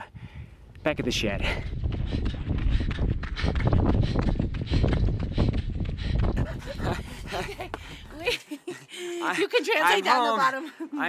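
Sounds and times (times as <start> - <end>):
wind buffeting microphone: 0.0 - 8.3
hard breathing: 1.4 - 9.3.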